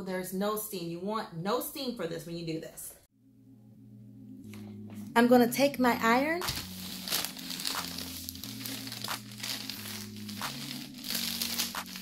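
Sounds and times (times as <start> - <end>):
paper rustling under iron: 6.4 - 12.0.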